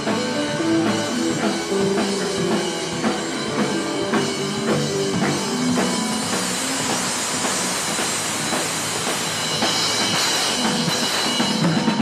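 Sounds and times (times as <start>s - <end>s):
cymbals ringing: 0.0s - 12.0s.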